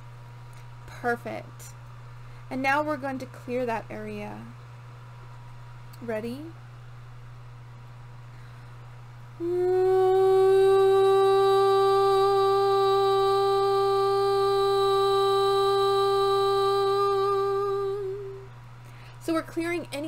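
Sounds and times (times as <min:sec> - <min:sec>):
woman singing a long steady note: 0:09.4 - 0:18.6.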